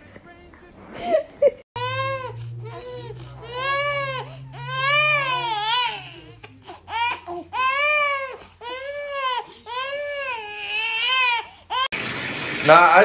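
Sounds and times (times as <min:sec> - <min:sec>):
infant crying: 0:01.8 - 0:11.9.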